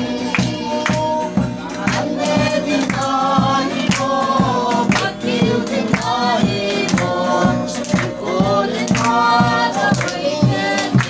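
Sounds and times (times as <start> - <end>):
group of voices singing: 0.0 - 11.0
hand drum beating: 0.0 - 11.0.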